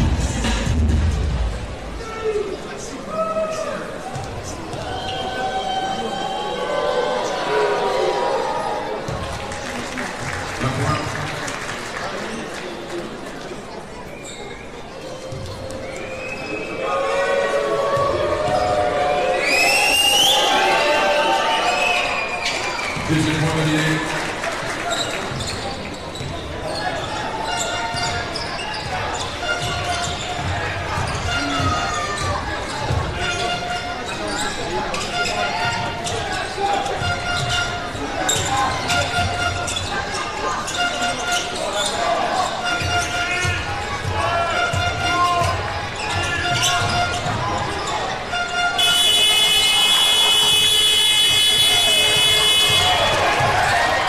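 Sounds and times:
crowd voices echoing: 0.0 - 54.0
sneakers squeaking: 13.3 - 16.9, 17.8 - 20.6, 24.8 - 54.0
loud steady horn: 48.3 - 53.1.

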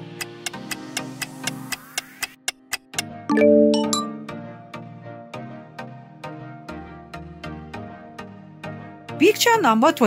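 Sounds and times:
light background music: 0.0 - 10.0
countdown timer ticking: 0.1 - 4.6.

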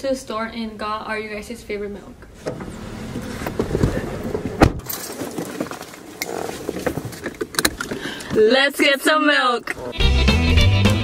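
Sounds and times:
handling noise and clicks: 3.4 - 8.4.

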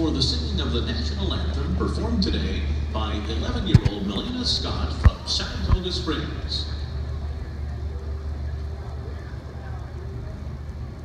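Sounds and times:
faint distant voices: 0.0 - 11.0
low crowd rumble: 0.0 - 11.0.

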